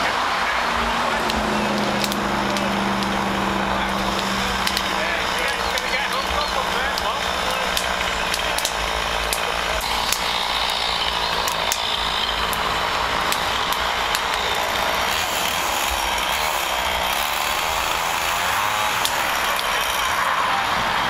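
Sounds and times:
sharp crackles: 0:00.1 - 0:21.0
chainsaw running: 0:00.5 - 0:21.0.

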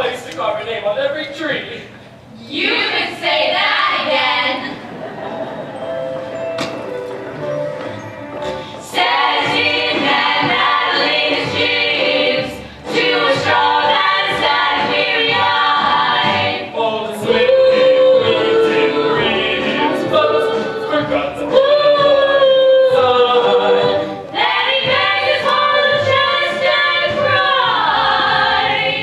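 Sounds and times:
voices singing: 0:02.4 - 0:05.5, 0:08.5 - 0:29.0
pit orchestra playing: 0:05.2 - 0:11.0, 0:17.3 - 0:24.3.

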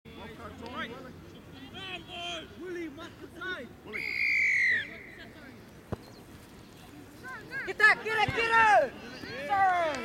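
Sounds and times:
referee's whistle blast: 0:03.9 - 0:04.8.

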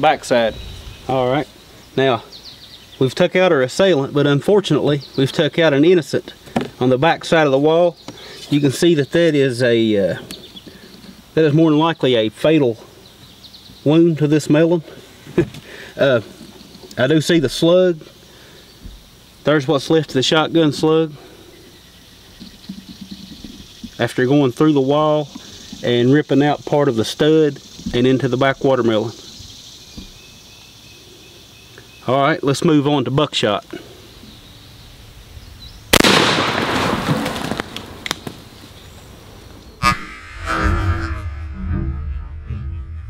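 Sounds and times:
sharp bang: 0:35.9 - 0:37.0, 0:39.8 - 0:43.0
shotgun firing with echo: 0:35.9 - 0:37.5
faint low rumble: 0:39.8 - 0:43.0.

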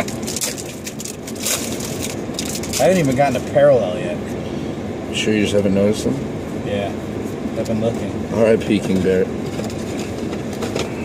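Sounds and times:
foil wrapper crinkling and tearing: 0:00.0 - 0:03.0.

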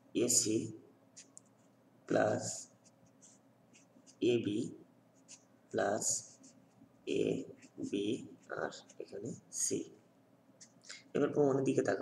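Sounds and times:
man speaking: 0:00.0 - 0:00.9, 0:02.1 - 0:02.8, 0:04.1 - 0:04.9, 0:05.7 - 0:10.0, 0:10.9 - 0:12.0
marker scratching on paper: 0:01.1 - 0:04.5, 0:05.2 - 0:09.6.

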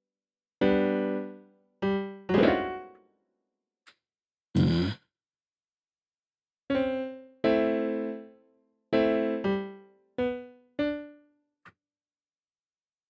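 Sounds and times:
piano chords: 0:00.6 - 0:03.2, 0:06.7 - 0:11.3.

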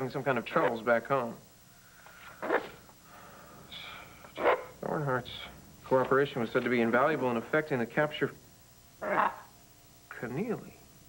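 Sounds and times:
macaw calling: 0:09.0 - 0:09.5.

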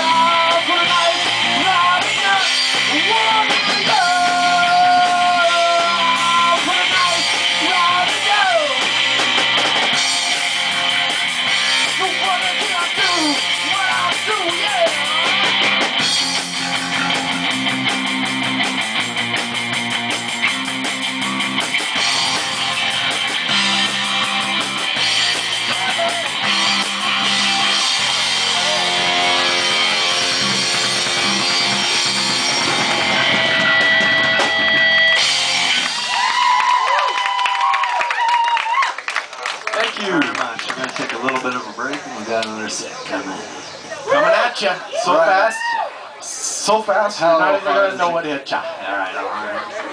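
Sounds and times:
distorted electric guitar: 0:00.0 - 0:37.0, 0:40.5 - 0:45.3
drum kit: 0:00.0 - 0:38.8
bass guitar: 0:00.0 - 0:49.9.

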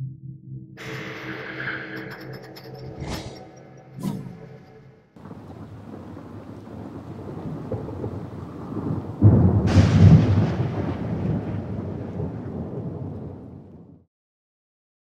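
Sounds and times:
steady rain: 0:05.2 - 0:13.8
thunder cracking and rumbling: 0:05.2 - 0:14.0.

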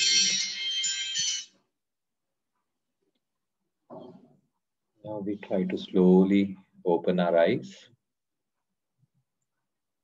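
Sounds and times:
electronic bell-like chime: 0:00.0 - 0:01.6.

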